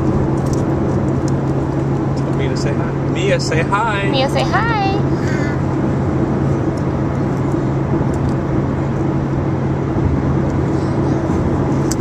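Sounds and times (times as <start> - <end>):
car engine drone: 0.0 - 12.0
tyre road noise: 0.0 - 12.0.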